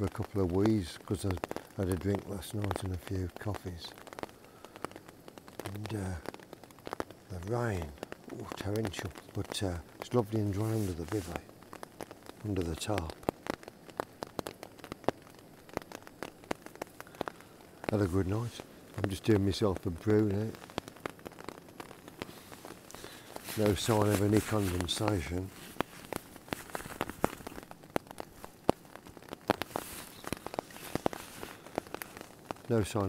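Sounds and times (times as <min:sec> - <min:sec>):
faint rain hiss: 0:00.0 - 0:33.0
raindrops tapping on tarp: 0:00.0 - 0:33.0.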